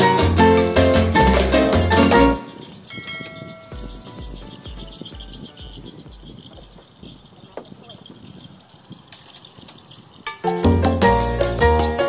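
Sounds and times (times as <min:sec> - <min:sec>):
bell-like chime: 0:02.9 - 0:03.9.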